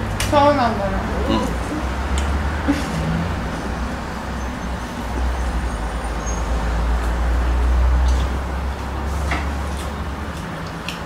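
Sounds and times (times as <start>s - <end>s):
vehicle passing: 0.0s - 10.3s
road traffic rumble: 0.0s - 11.0s.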